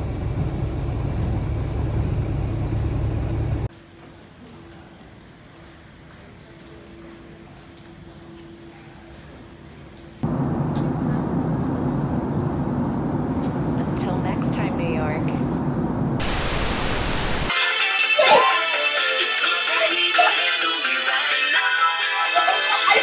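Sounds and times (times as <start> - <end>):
airliner engine and air rumble: 0.0 - 3.7, 10.2 - 17.5
faint hum: 10.2 - 17.5
music: 17.5 - 23.0.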